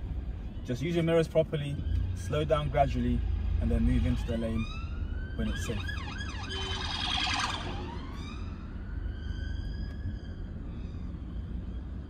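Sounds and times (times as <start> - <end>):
car engine rumble: 0.0 - 12.0
road noise: 0.0 - 12.0
emergency siren wailing: 1.7 - 12.0.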